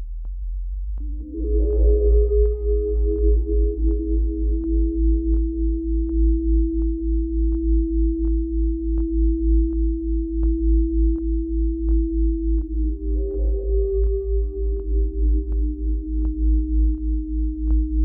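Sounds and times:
throbbing low bass pulse: 0:00.0 - 0:18.0
pulsing synthesizer tone: 0:01.0 - 0:18.0.

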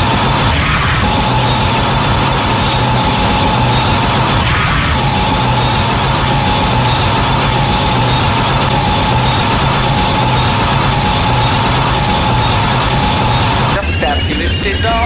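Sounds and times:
low pulsing hum: 0:00.0 - 0:14.9
harsh noise music: 0:00.0 - 0:15.0
steady high whine: 0:00.0 - 0:15.0.

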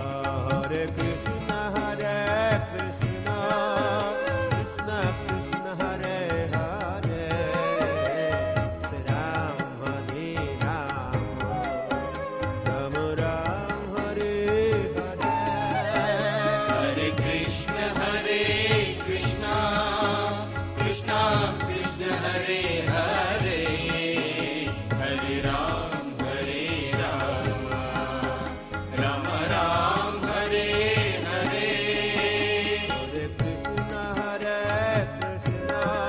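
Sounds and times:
devotional chanting: 0:00.0 - 0:36.0
low musical accompaniment: 0:00.0 - 0:36.0.

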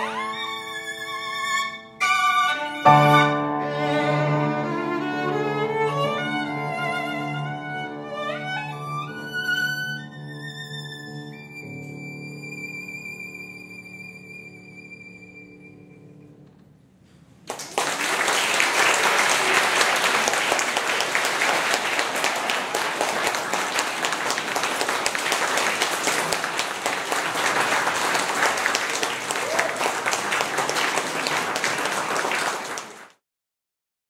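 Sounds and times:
audience applause: 0:17.4 - 0:33.2.

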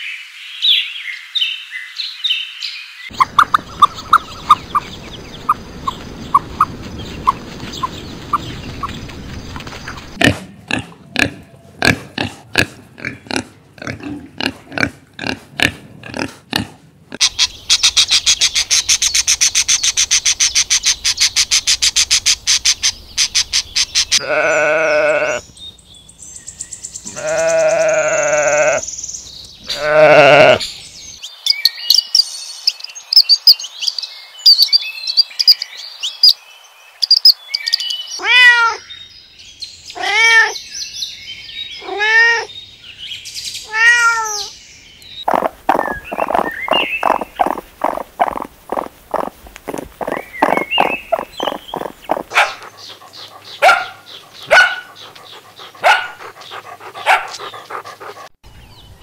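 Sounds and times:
high chirps: 0:45.2 - 0:52.4
fast pulsing animal trill: 0:45.3 - 0:58.2
long wavering animal calls: 0:45.3 - 0:58.2.

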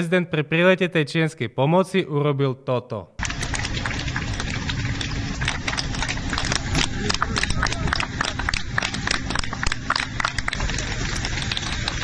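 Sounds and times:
jet engine rush: 0:03.2 - 0:12.0
faint voices: 0:05.7 - 0:12.0.

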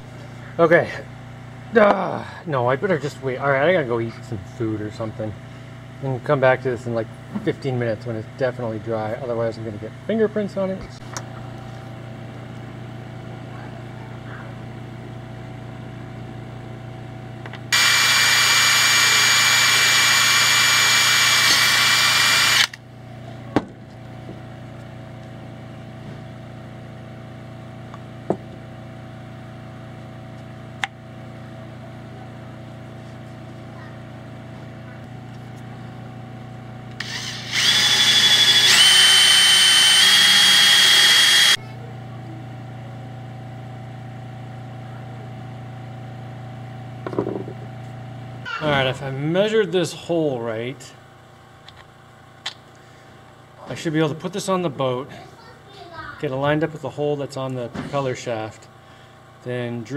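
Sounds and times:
steady low hum: 0:00.0 - 0:59.9
cordless drill running: 0:17.7 - 0:22.8, 0:36.9 - 0:41.6.

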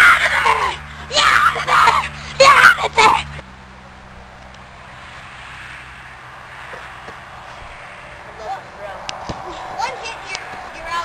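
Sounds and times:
boys yelling and screaming: 0:00.0 - 0:03.4, 0:08.4 - 0:11.0.

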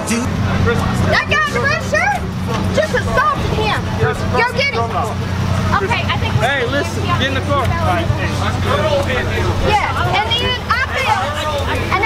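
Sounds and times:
car engine idling: 0:00.0 - 0:12.0
people talking: 0:00.0 - 0:12.0.

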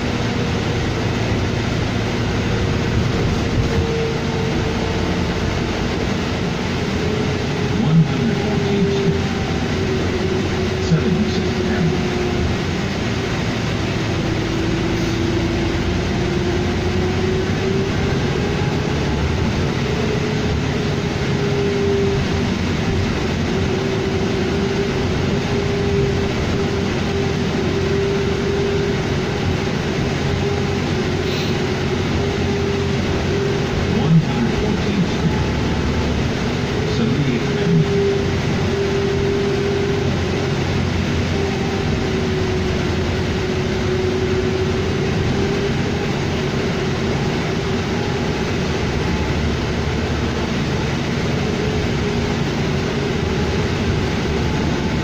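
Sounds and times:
bus engine drone with whine: 0:00.0 - 0:55.0.

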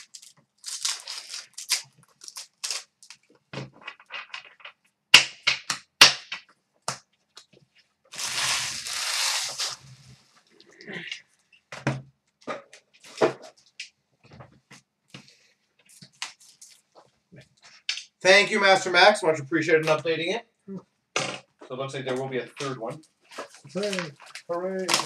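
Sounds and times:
foil wrappers crinkling: 0:00.0 - 0:03.3, 0:08.1 - 0:09.9, 0:23.3 - 0:25.0.

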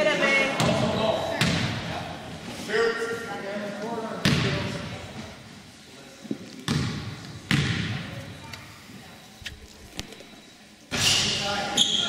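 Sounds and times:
basketball bouncing on gym floor: 0:00.6 - 0:01.9, 0:04.2 - 0:05.0, 0:06.6 - 0:08.2.

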